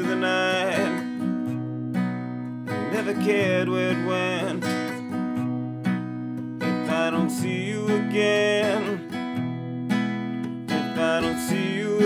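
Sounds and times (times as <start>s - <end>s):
acoustic guitar chords strummed: 0.0s - 12.0s.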